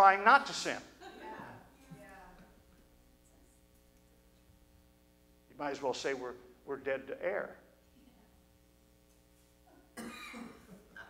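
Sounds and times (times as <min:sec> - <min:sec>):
faint room hum: 0:00.0 - 0:11.0
person coughing: 0:10.0 - 0:11.0.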